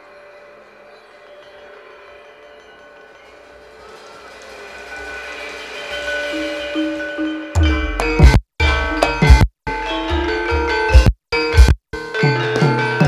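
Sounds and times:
gamelan music: 0.0s - 13.0s.

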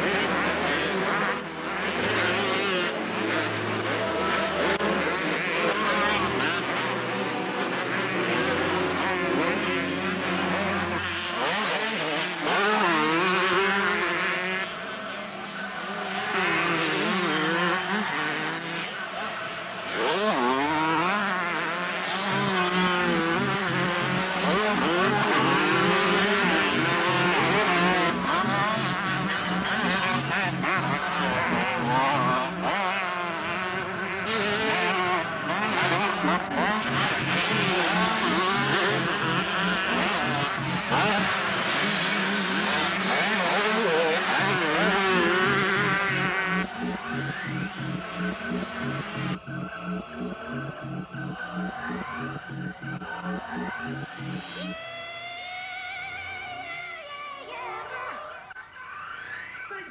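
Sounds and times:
motocross bikes revving: 0.0s - 56.6s.

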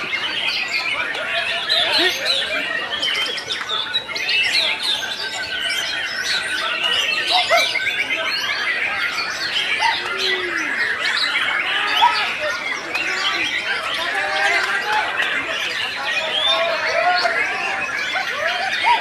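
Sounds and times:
birds singing: 0.0s - 19.0s.

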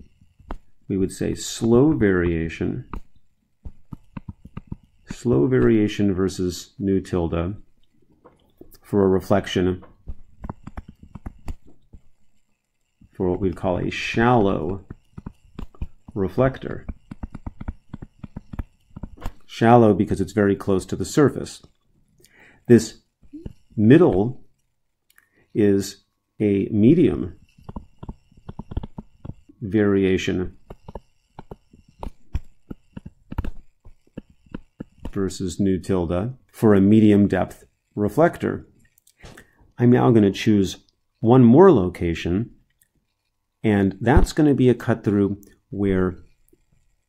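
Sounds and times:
stylus tapping on tablet: 2.9s - 5.9s, 9.8s - 12.1s, 14.4s - 19.5s, 27.6s - 29.5s, 30.5s - 35.2s.

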